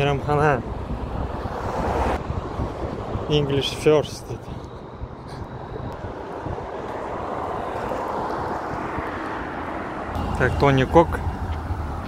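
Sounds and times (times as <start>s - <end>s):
wind on microphone: 0.0s - 10.2s
moving vehicle rushing noise: 0.3s - 12.0s.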